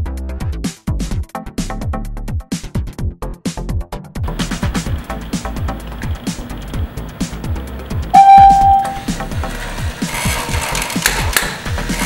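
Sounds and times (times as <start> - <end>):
toy electronic chime: 8.2 - 9.1.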